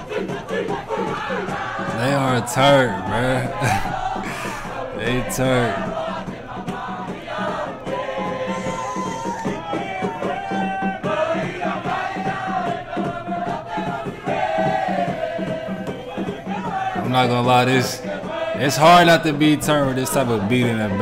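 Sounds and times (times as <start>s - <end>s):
crowd singing: 0.0s - 21.0s
steady drum beat: 0.0s - 21.0s.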